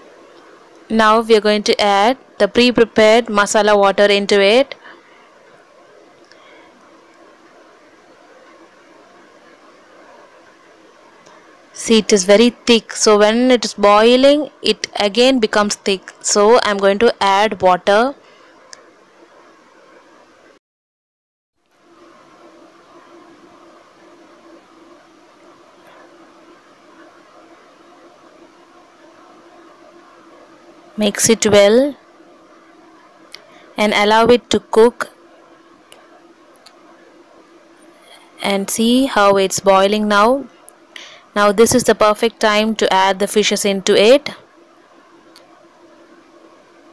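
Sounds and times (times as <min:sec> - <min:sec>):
electric fan humming: 0:00.0 - 0:20.6, 0:21.6 - 0:46.9.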